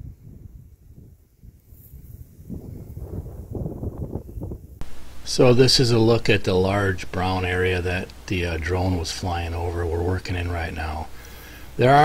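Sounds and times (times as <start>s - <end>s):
wind buffeting microphone: 0.0s - 5.1s.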